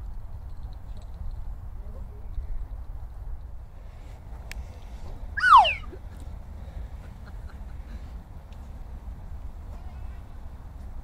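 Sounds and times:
loud falling cry: 0:05.4 - 0:06.0.

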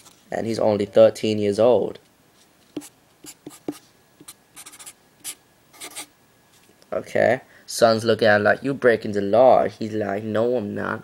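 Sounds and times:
marker writing on paper: 0:02.7 - 0:06.1.

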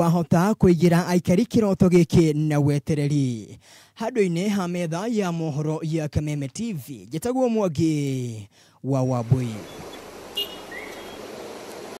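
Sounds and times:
street traffic noise: 0:09.2 - 0:12.0
high chirp: 0:09.6 - 0:11.2.

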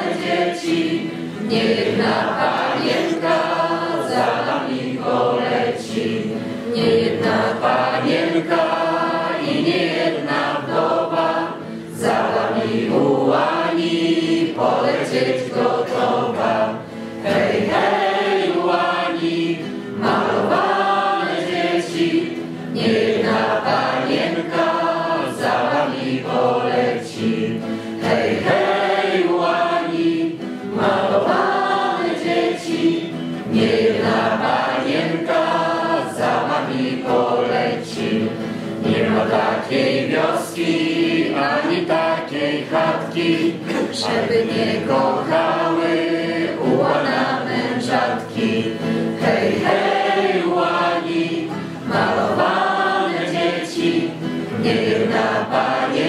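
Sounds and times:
choir singing: 0:00.0 - 0:56.0.

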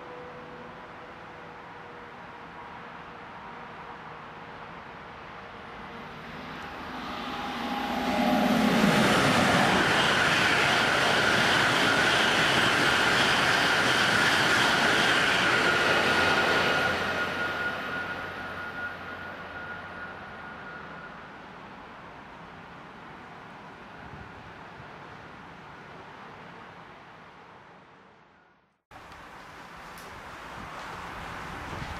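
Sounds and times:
high-speed train roar: 0:00.0 - 0:28.2, 0:29.0 - 0:31.9
thin high whine: 0:05.8 - 0:12.6, 0:15.4 - 0:21.4.

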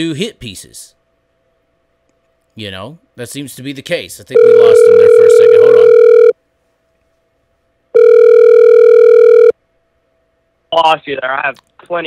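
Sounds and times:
telephone ringing tone: 0:04.4 - 0:06.3, 0:08.0 - 0:09.6.

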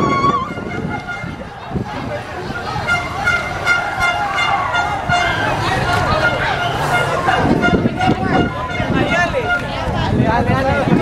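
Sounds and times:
crowd and street noise: 0:00.0 - 0:11.0
horn tooting short blasts: 0:00.4 - 0:01.4, 0:02.8 - 0:09.8.

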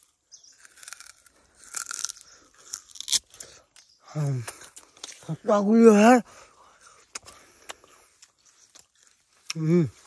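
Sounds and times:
sugarcane crunching and cracking: 0:00.0 - 0:05.6, 0:06.8 - 0:10.0.

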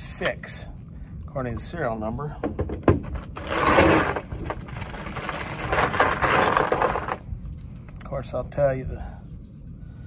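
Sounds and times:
scraping and clicking handling noise: 0:02.8 - 0:08.1.

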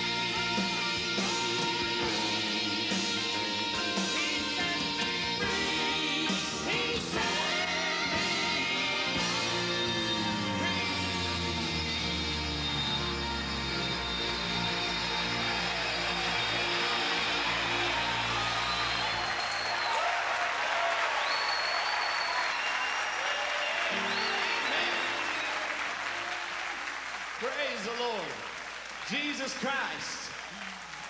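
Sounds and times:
piano and guitar chord ringing: 0:00.0 - 0:19.8, 0:23.8 - 0:26.7
audience applauding: 0:07.4 - 0:31.0
man talking: 0:27.4 - 0:28.4, 0:29.1 - 0:30.3.

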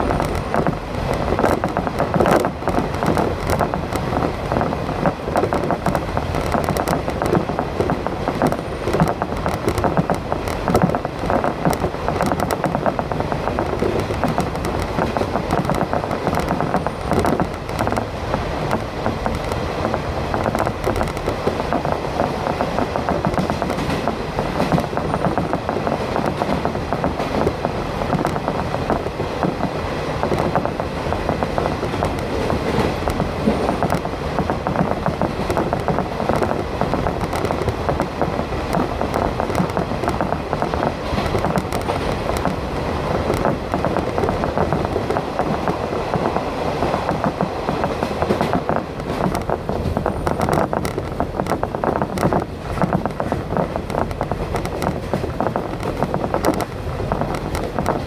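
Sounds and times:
train car running noise: 0:00.0 - 0:58.0
train wheels rumbling on rails: 0:00.0 - 0:58.0.

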